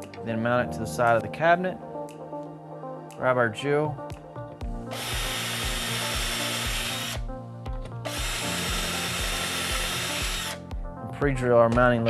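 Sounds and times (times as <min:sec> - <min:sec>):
background music with steady beat: 0:00.0 - 0:12.0
cordless drill running: 0:04.9 - 0:07.2, 0:08.1 - 0:10.6.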